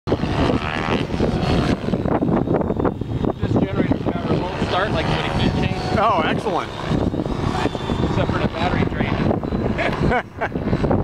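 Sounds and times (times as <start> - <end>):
helicopter rotor and motor: 0.1 - 11.0
high whine: 0.1 - 11.0
wind buffeting microphone: 0.1 - 11.0.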